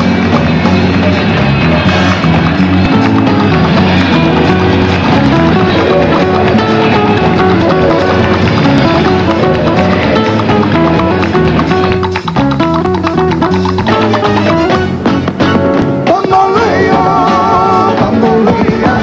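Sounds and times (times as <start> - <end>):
band music with guitar: 0.0 - 19.0.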